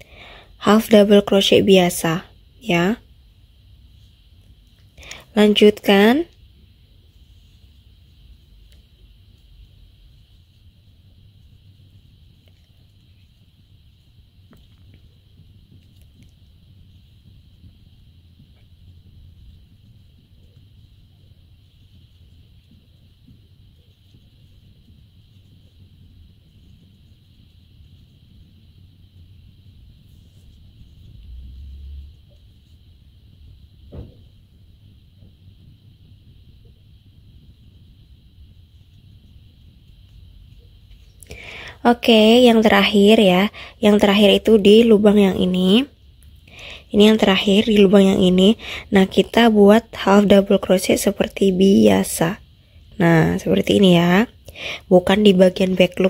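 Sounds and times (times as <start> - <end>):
low background hum: 0.0 - 56.0.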